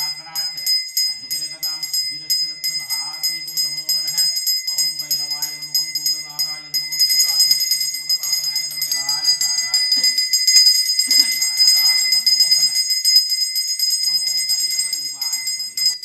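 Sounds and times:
person chanting: 0.0 - 10.2, 11.1 - 12.8, 14.1 - 16.0
hand bell ringing fast: 0.0 - 16.0.

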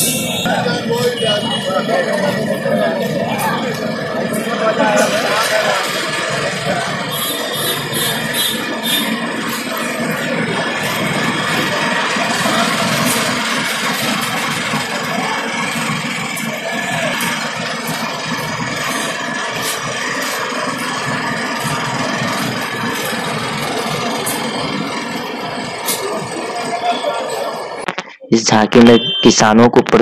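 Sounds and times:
music from loudspeakers: 0.0 - 23.6
truck engine idling: 0.0 - 28.0.

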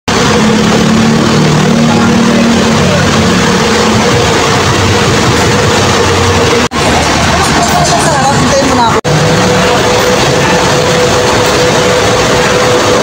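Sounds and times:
bus engine idling: 0.1 - 13.0
higher steady tone: 0.1 - 13.0.

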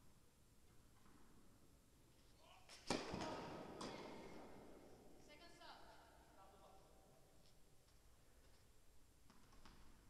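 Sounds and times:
tennis racket striking ball: 2.8 - 4.8.

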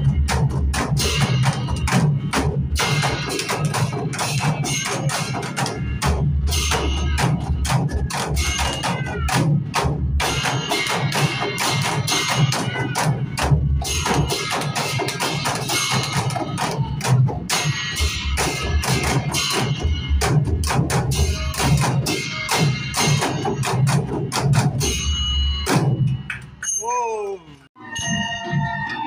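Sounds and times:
barrel drums played in fast rhythm: 0.0 - 26.6.

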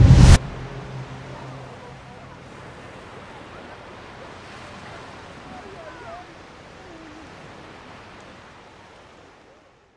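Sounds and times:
waves breaking on beach: 0.0 - 9.9.

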